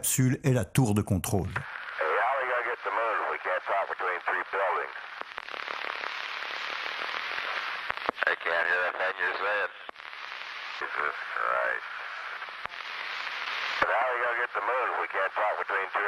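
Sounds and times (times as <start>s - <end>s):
man's voice over radio: 0.0s - 5.0s, 8.2s - 9.8s, 13.8s - 16.0s
radio static: 0.0s - 16.0s.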